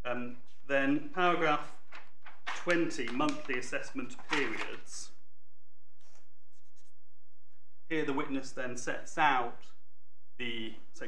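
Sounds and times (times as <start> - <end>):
paper scratching and rustling: 2.5 - 4.9, 6.0 - 6.9.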